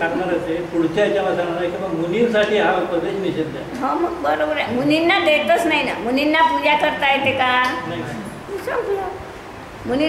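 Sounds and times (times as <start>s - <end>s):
woman speaking: 3.8s - 10.0s.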